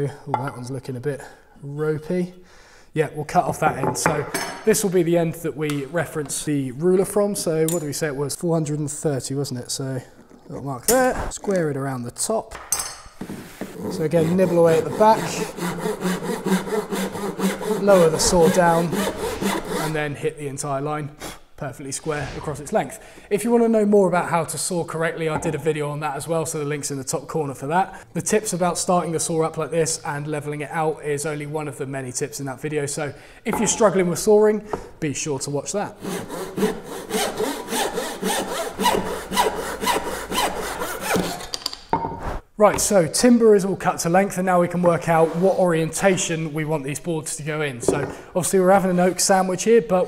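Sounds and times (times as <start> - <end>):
handsaw cutting wood: 13.2 - 20.1, 36.0 - 41.5.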